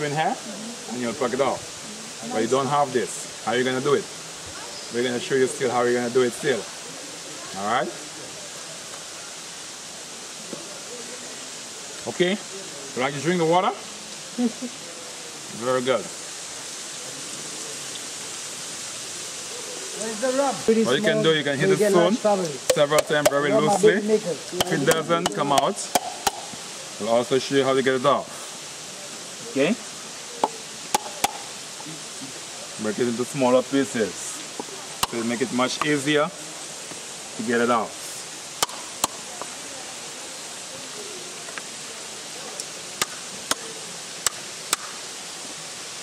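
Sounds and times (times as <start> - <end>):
stream water rushing: 0.0 - 46.0
stone knocking on coconut shell: 24.6 - 26.5, 30.4 - 31.5.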